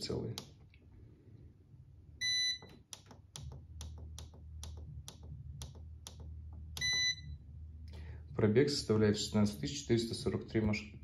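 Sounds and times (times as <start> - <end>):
low hum: 0.7 - 10.5
coffee machine beeping: 2.2 - 2.9, 6.8 - 7.4.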